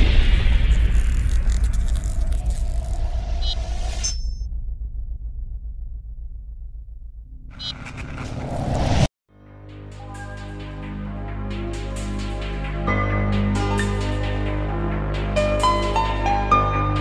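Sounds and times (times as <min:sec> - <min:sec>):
deep rumble: 0:00.0 - 0:09.1.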